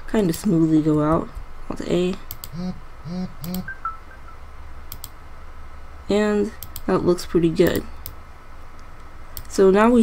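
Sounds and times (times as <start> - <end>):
man murmuring: 2.5 - 3.7
computer key click: 4.9 - 5.2, 6.6 - 6.9.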